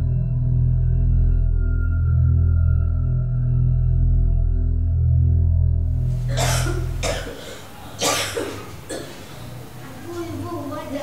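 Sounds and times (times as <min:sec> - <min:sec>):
person coughing harshly: 0:06.2 - 0:09.2.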